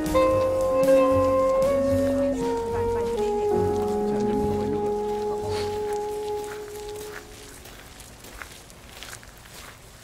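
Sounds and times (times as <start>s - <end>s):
held music notes: 0.0s - 8.7s
footsteps on gravel: 0.0s - 10.0s.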